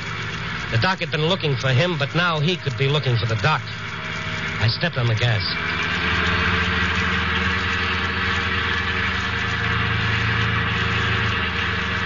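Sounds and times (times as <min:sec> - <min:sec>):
car engine driving off: 0:00.0 - 0:12.0.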